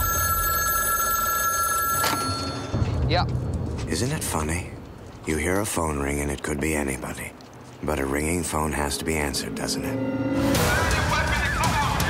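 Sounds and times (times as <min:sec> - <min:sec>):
payphone ringing: 0:00.0 - 0:02.8.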